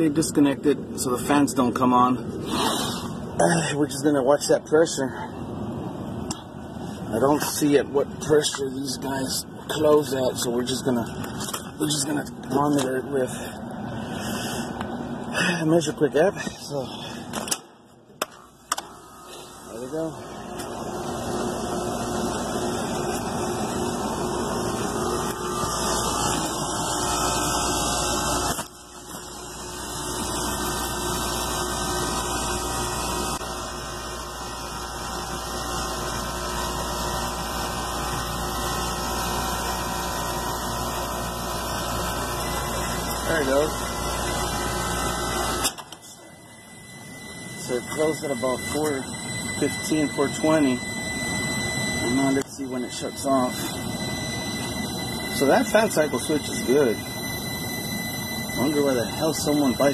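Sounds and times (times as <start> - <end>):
compressor mechanical drone: 0.0 - 59.9.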